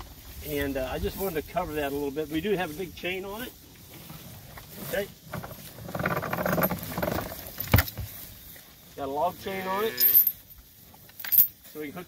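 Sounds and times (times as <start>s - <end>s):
chain rattling and clinking: 5.2s - 8.1s, 9.9s - 11.6s.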